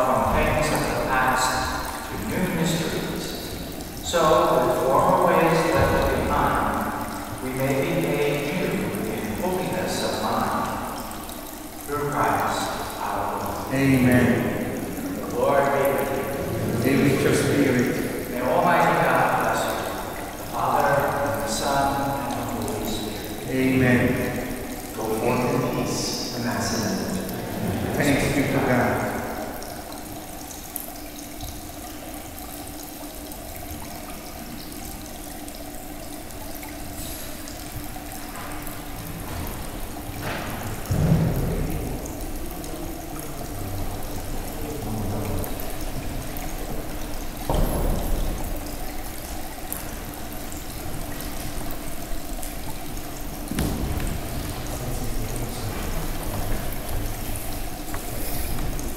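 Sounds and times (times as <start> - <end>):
low steady hum: 0.0 - 58.9
water trickling from fountain: 0.0 - 58.9.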